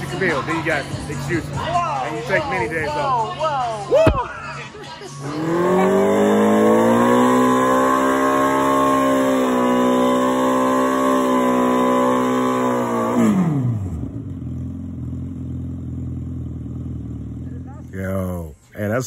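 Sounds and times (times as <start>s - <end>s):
motorcycle engine revving and idling: 5.2s - 18.0s.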